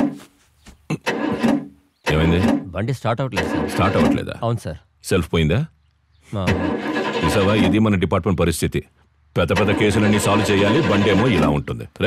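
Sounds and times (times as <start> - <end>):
vehicle engine starting and running: 0.9 - 4.2, 6.4 - 7.9, 9.4 - 11.7
man talking: 2.1 - 6.6, 7.2 - 12.0.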